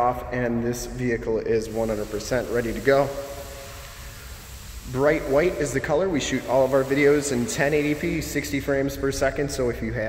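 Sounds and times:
man speaking: 0.0 - 3.2, 4.9 - 10.0
voice echo: 0.0 - 10.0.

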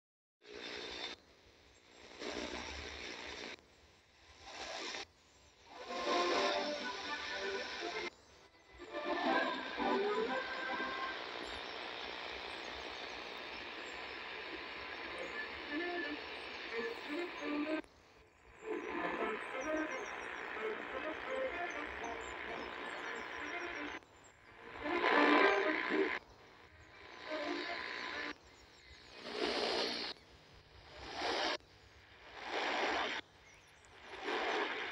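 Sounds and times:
radio static hiss: 0.4 - 34.9
distant radio station: 5.7 - 17.9, 18.5 - 30.2.

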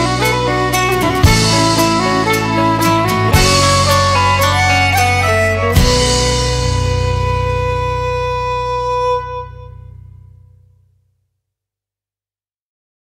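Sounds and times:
folk band instrumental: 0.0 - 10.2.

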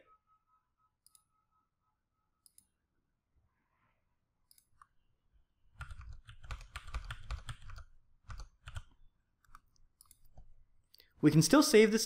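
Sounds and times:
computer keyboard typing: 5.8 - 10.4.

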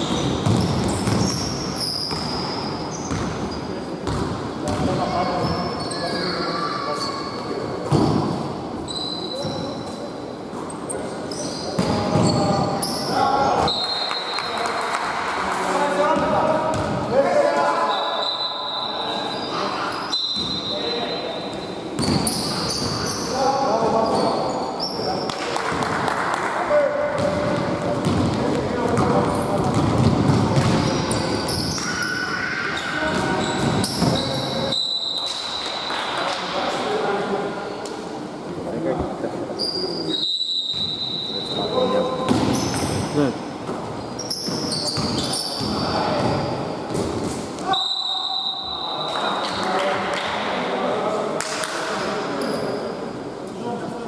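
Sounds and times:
ball bouncing on hardwood court: 0.0 - 3.4, 4.0 - 5.1, 16.2 - 17.0, 22.0 - 23.0, 27.2 - 31.9, 33.0 - 34.3, 42.2 - 43.0, 43.6 - 47.4
players' voices echoing: 0.0 - 54.0.

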